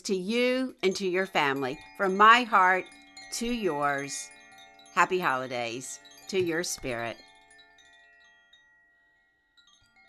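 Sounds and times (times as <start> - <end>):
chimes ringing: 0.4 - 10.0.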